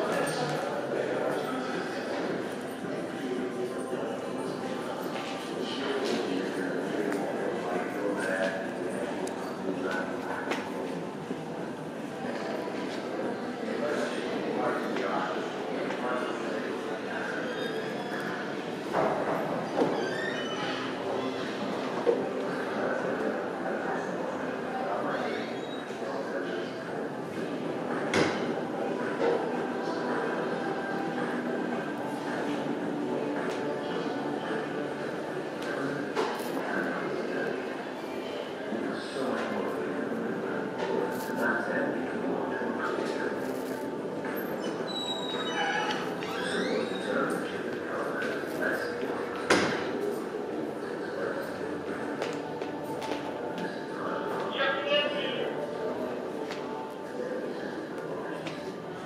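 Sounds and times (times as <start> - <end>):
crowd chatter echoing in hall: 0.0 - 59.0.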